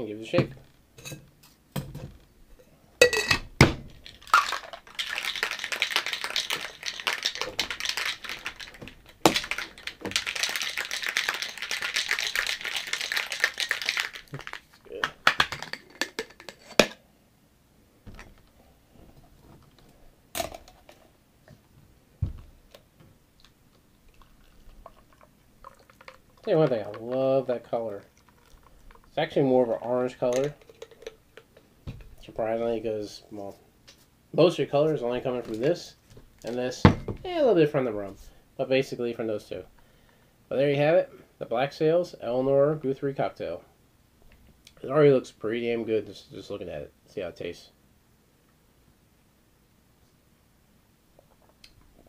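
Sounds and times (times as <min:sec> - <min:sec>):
shaker clicks and knocks: 0:03.9 - 0:17.0, 0:30.3 - 0:32.2
ice rattling in cocktail shaker: 0:04.0 - 0:16.7, 0:24.1 - 0:31.6.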